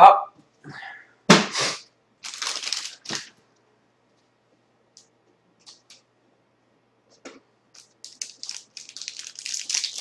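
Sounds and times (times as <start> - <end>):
wrapper tearing and crinkling: 2.2 - 3.3, 7.8 - 10.0.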